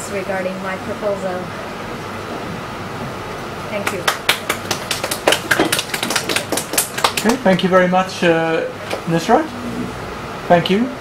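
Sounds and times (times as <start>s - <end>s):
few people clapping: 3.8s - 7.6s.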